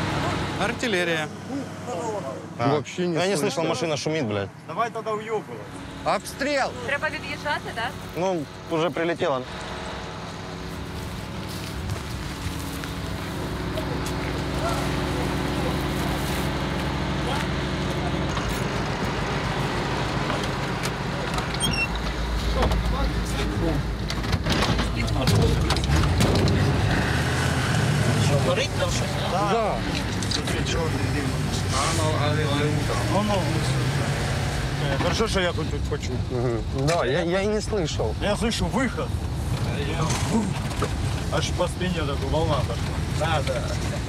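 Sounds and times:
truck engine pulling away: 6.8s - 24.0s, 25.0s - 35.6s.

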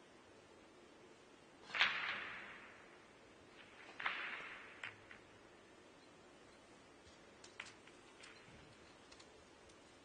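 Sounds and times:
billiard balls clicking: 7.1s - 9.8s.

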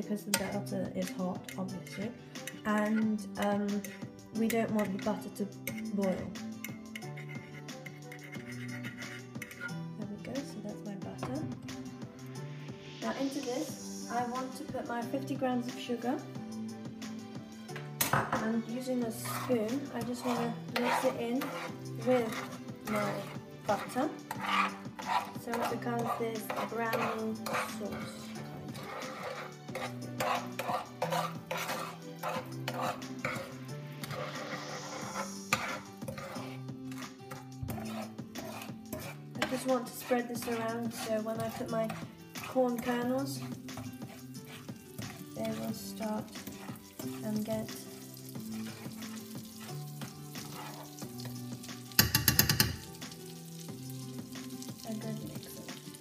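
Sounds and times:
background music: 0.0s - 56.0s
spoon scraping frying pan: 0.2s - 9.9s, 17.6s - 56.0s.

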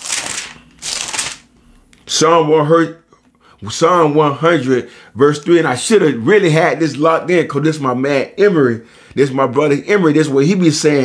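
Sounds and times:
book pages rustling: 0.0s - 1.6s.

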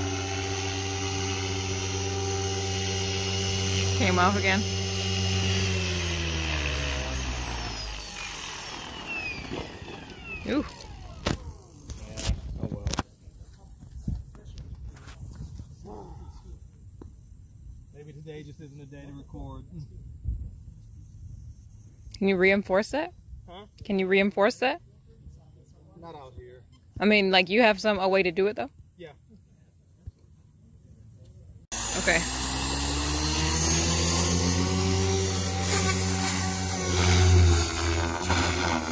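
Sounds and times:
rc helicopter motor whine: 0.0s - 12.6s, 31.7s - 38.9s.

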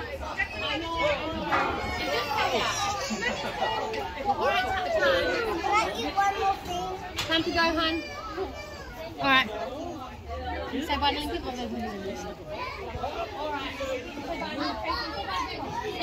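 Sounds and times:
children chattering and calling out: 0.0s - 16.0s.

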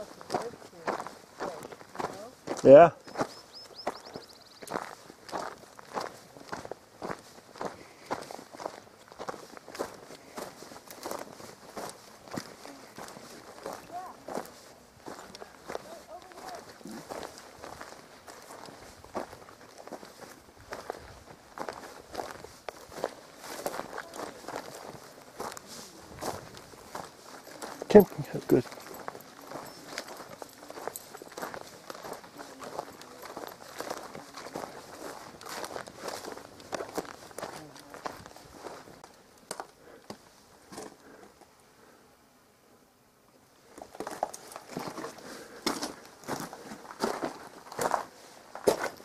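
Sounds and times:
footsteps on dry ground and grass: 0.0s - 41.6s, 43.6s - 49.0s.

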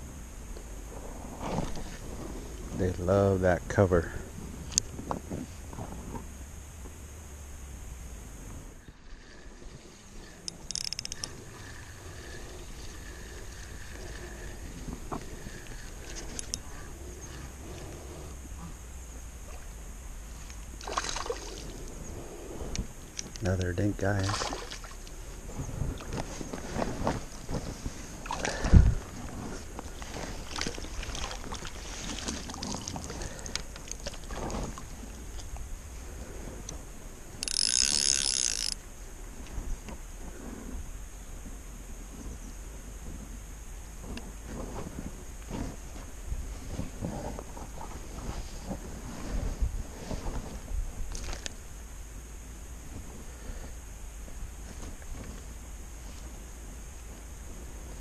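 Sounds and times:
rustling and knocking of fishing gear: 1.4s - 2.3s, 10.4s - 18.0s, 24.2s - 35.7s, 43.0s - 51.6s, 54.3s - 56.4s
wind on microphone: 25.2s - 37.4s, 39.2s - 51.5s.

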